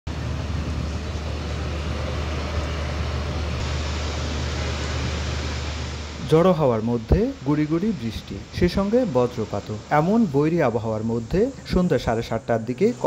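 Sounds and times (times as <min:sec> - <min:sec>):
turboprop engines droning: 0:00.1 - 0:13.0.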